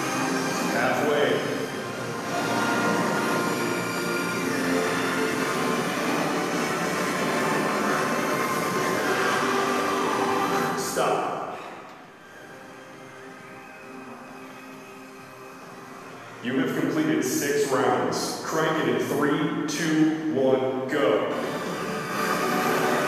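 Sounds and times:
electronic tones with sweeps: 0.0s - 11.6s, 12.2s - 20.4s.

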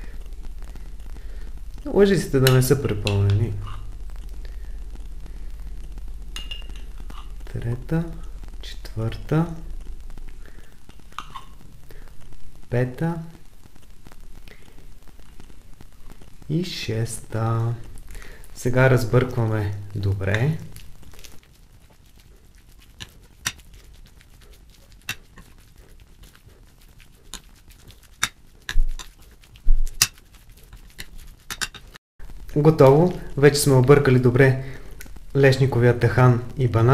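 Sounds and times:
spoon stirring food: 0.0s - 4.7s, 5.3s - 9.2s, 10.4s - 12.0s, 17.4s - 32.0s
spoon clinking against plate: 6.4s - 6.8s
metal spoon scraping glass jar: 31.0s - 31.8s.

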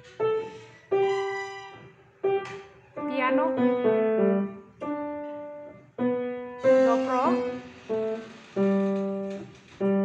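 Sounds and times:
slow piano notes: 0.0s - 10.0s.

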